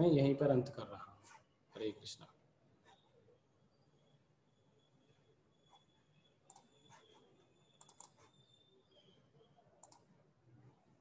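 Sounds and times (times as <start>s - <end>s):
faint computer clicks: 6.4s - 8.4s, 9.8s - 10.2s.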